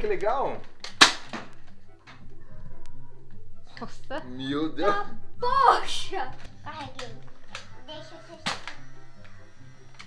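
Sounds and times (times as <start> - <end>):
toy dart blaster snap: 6.9 - 10.0.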